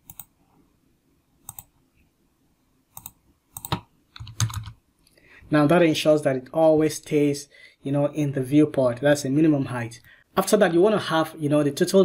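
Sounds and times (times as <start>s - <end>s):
keyboard keystrokes: 3.0s - 4.8s.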